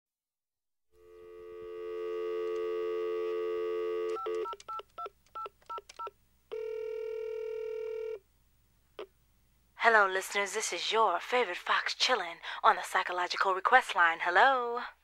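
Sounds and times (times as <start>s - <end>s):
telephone ringback tone: 1.0s - 4.6s, 6.5s - 8.2s
telephone dial tone: 1.0s - 8.2s.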